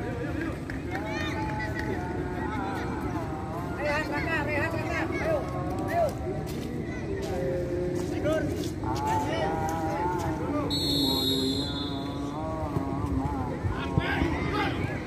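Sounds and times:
people calling and shouting: 0.0 - 15.0
high steady whistle: 10.7 - 12.2.

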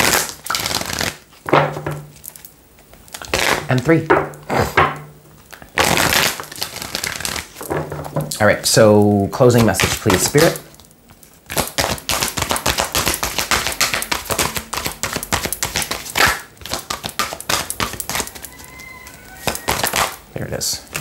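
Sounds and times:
cards being shuffled: 0.0 - 4.8, 5.4 - 8.5, 9.4 - 20.2, 20.8 - 21.0.

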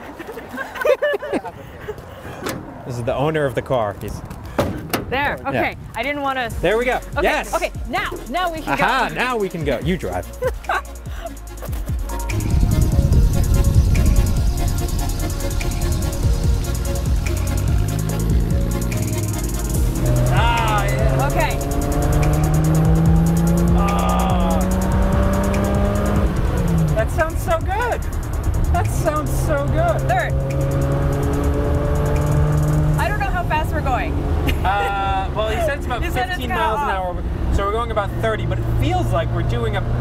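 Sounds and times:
car engine accelerating: 12.1 - 40.0.

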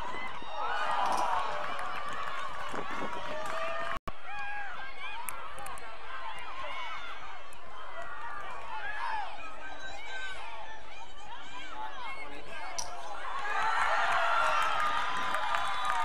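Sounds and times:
players and spectators shouting: 3.3 - 16.0.

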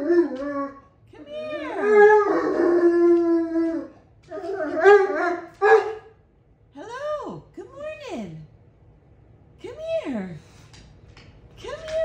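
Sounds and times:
dog howling: 0.0 - 6.1.

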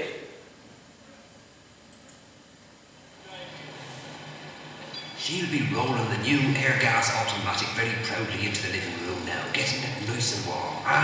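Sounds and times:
radio advert through loudspeaker: 3.3 - 11.0.

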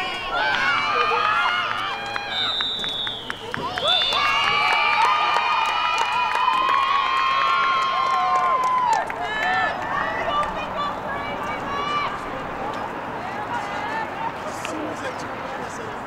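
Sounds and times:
young women shouting and cheering: 0.0 - 2.6, 3.4 - 14.3.

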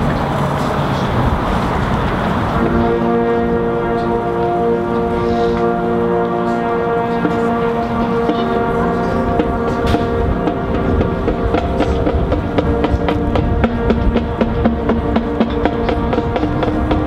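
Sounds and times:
marching band brass chords: 1.2 - 17.0
drum strikes: 7.2 - 17.0.

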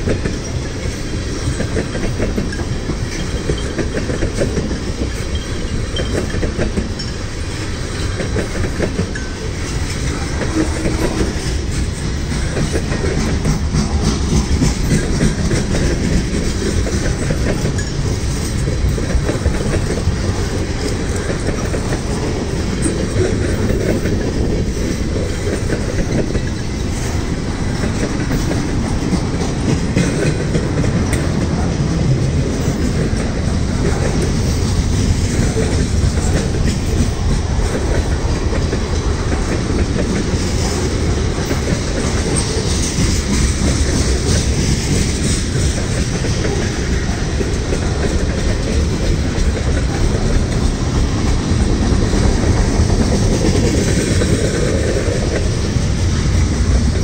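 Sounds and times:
train wheels rumbling on rail: 0.0 - 57.0
wheels clicking over rail joints: 0.0 - 57.0.

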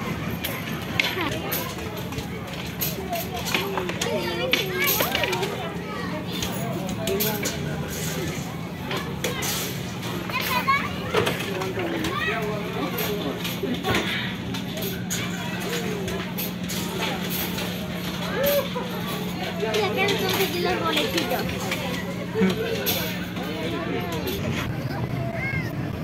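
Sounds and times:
children playing and shouting: 0.0 - 26.0
people talking: 0.0 - 26.0.

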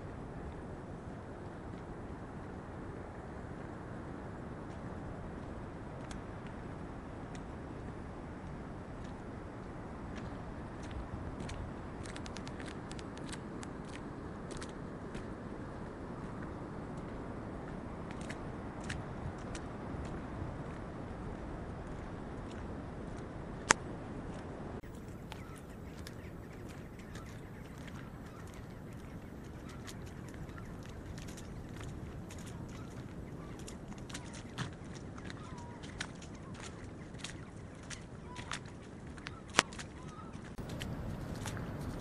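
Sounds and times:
footsteps on wet rock: 24.8 - 42.0
faint bird calls: 24.9 - 42.0.

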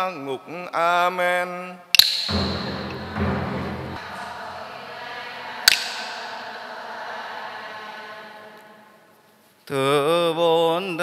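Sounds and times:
congregation chanting prayer: 2.3 - 10.8
wooden hand clapper clap: 5.7 - 6.0.

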